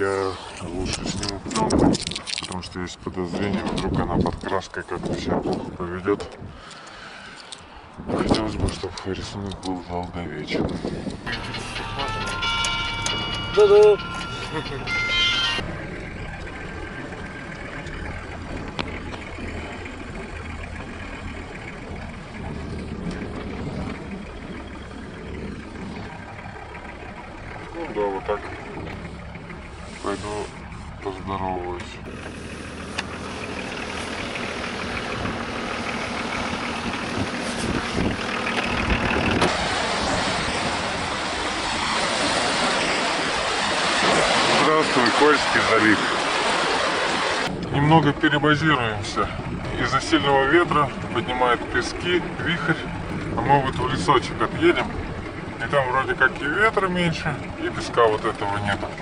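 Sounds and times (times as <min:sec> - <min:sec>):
engine and road noise in cab: 0:00.0 - 0:59.0
wind: 0:00.0 - 0:59.0
voices: 0:07.4 - 0:32.1, 0:44.4 - 0:59.0
waves breaking on a shore: 0:35.8 - 0:59.0.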